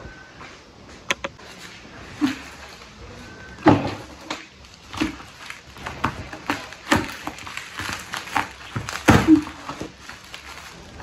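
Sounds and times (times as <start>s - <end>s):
packaging being handled and opened: 3.9s - 11.0s.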